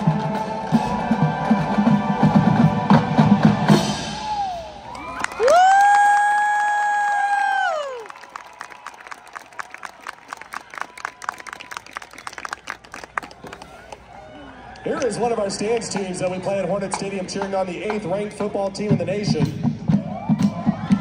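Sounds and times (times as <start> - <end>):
person cheering woo: 4.2 - 9.7
crowd clapping and cheering: 4.2 - 18.3, 19.9 - 21.0.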